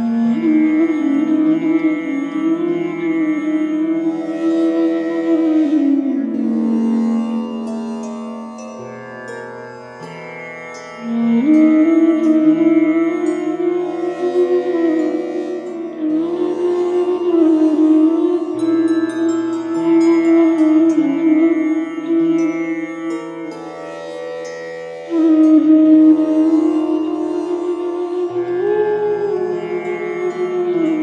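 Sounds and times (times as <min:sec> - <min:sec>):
slow flute melody: 0:00.0 - 0:09.1, 0:10.0 - 0:31.0.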